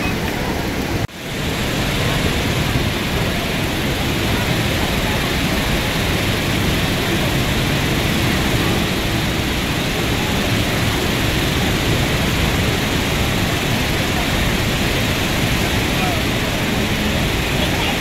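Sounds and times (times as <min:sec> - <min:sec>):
waterfall rushing: 0:00.0 - 0:18.0.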